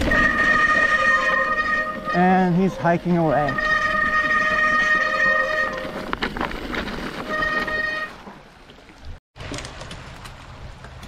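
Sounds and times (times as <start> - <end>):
bike disc brake squealing: 0.0 - 6.4, 7.0 - 8.2
tyres rattling on rocky trail: 0.0 - 11.0.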